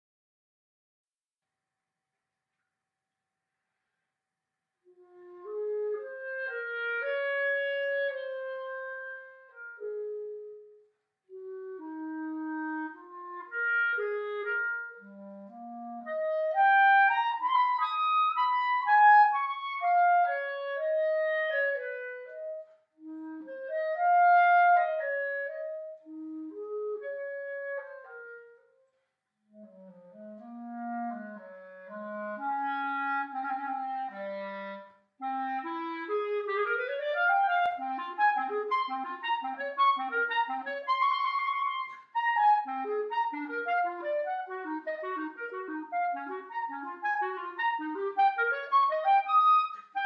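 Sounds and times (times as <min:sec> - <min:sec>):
solo clarinet slow melody: 0:04.8 - 0:50.0.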